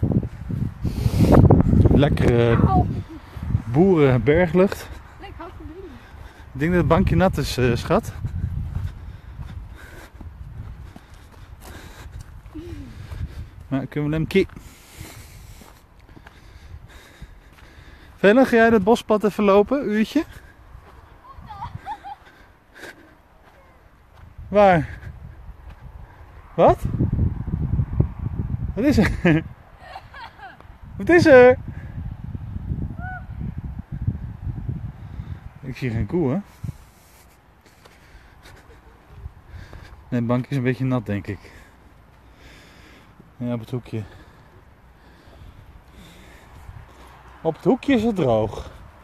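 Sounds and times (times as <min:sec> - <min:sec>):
wind rumble on microphone: 0:00.0 - 0:18.9, 0:20.3 - 0:22.7, 0:23.8 - 0:37.2, 0:38.0 - 0:40.2, 0:44.1 - 0:49.0
footsteps on grassy dirt: 0:04.4 - 0:16.5, 0:17.4 - 0:19.4, 0:20.0 - 0:22.2, 0:22.8 - 0:26.0.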